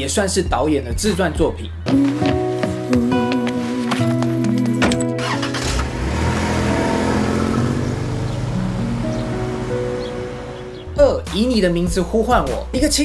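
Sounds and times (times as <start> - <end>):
film soundtrack music: 0.9 - 13.0
car engine and road noise: 3.6 - 11.4.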